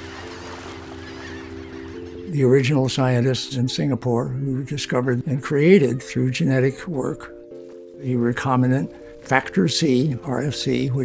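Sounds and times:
flock of birds calling: 0.0 - 3.9
low background music chord: 0.1 - 11.0.

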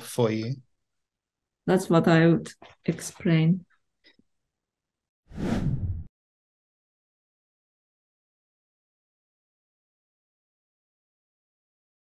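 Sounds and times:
whoosh: 5.3 - 6.1.

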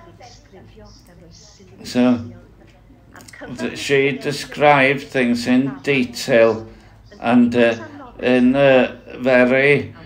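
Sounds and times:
woman speaking: 0.0 - 8.8.

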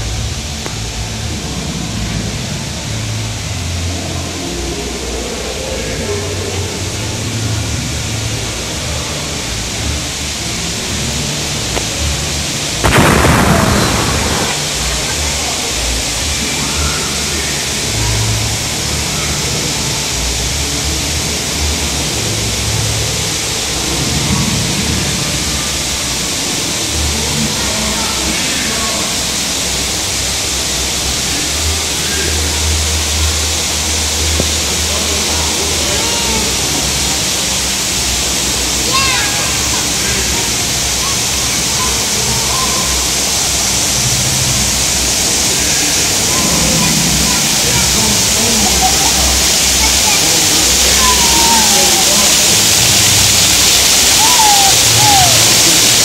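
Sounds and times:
waterfall rushing: 0.0 - 56.0
loud crash: 12.8 - 15.7.

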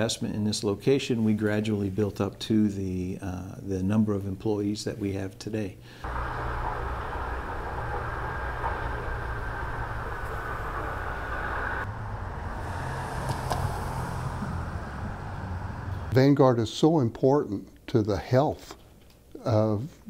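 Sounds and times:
low rumble of road traffic: 6.0 - 16.2.

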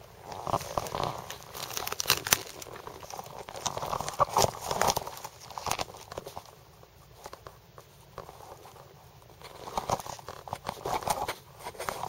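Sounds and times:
twigs crunching underfoot: 0.3 - 6.6.

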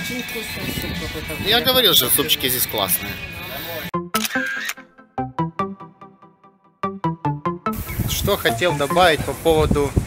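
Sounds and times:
plucked background music: 0.8 - 9.6
camera shutter click: 4.2 - 4.8.

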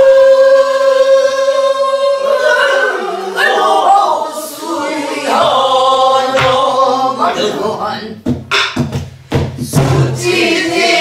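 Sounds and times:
group singing in unison: 0.0 - 8.3, 9.6 - 11.0.

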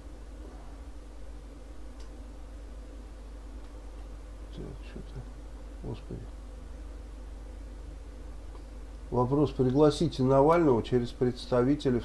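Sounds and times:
low electrical buzz: 0.0 - 12.0.

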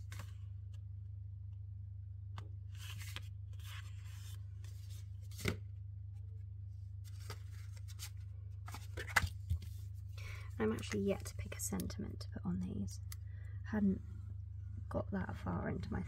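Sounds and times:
steady low hum: 0.0 - 16.0
paper sliding and rustling: 2.7 - 5.6, 7.0 - 9.8.

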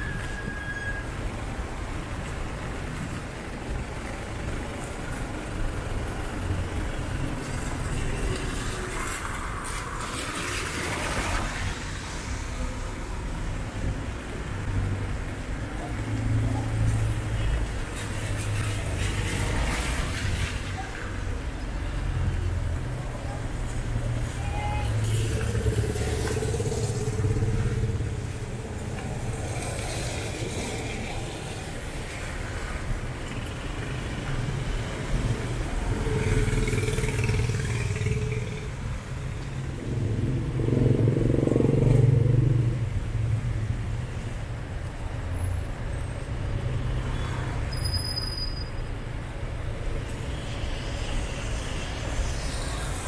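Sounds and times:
passing vehicles engine rumble: 1.2 - 47.7, 48.8 - 53.0.

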